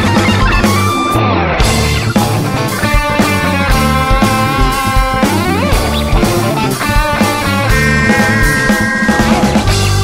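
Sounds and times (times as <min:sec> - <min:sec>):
hard rock band playing: 0:00.0 - 0:10.0
lead electric guitar: 0:00.0 - 0:10.0.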